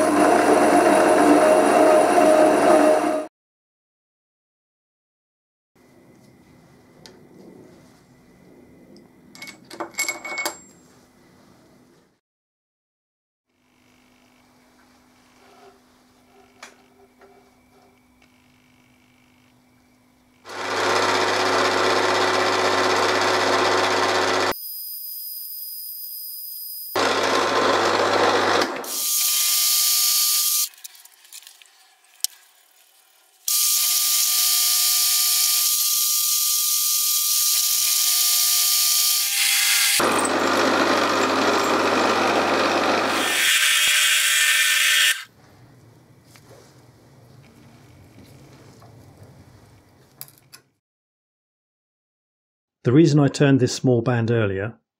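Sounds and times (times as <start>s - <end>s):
milling machine drilling metal: 33.5s - 45.3s.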